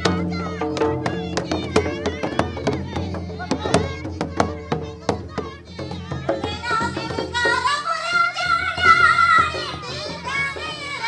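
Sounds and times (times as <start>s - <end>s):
barrel drum beating: 0.0s - 11.0s
group singing folk song: 0.0s - 11.0s.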